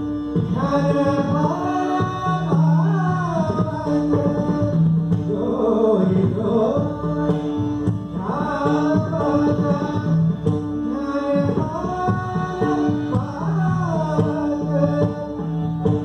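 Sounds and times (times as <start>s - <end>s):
tabla strokes: 0.0s - 16.0s.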